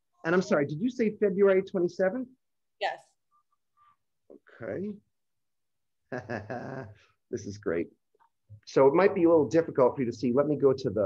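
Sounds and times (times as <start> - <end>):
man laughing: 6.1 - 7.1.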